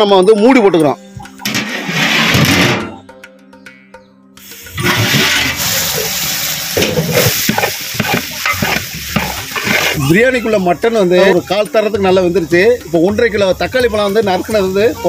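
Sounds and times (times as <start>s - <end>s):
background music: 0.0s - 15.0s
stew bubbling and sizzling in pot: 4.4s - 15.0s.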